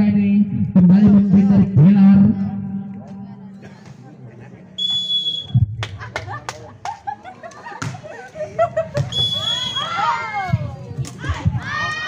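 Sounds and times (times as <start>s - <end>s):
women shouting and cheering: 9.4s - 12.0s.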